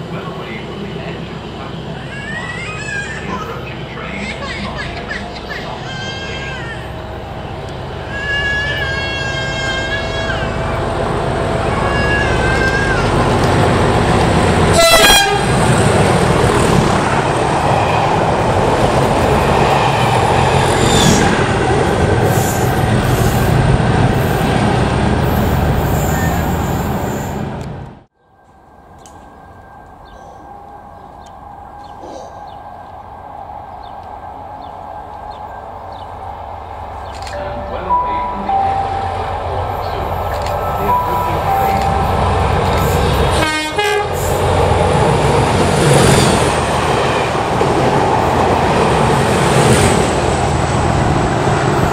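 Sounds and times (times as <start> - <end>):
approaching train: 0.0 - 51.9
passing train engine and wheels: 0.0 - 51.9
two-tone train horn: 14.7 - 15.7, 40.8 - 44.3.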